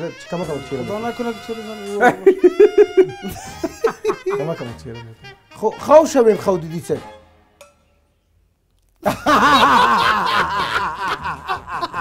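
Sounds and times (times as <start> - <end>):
person laughing: 1.8 - 5.0, 9.0 - 12.0.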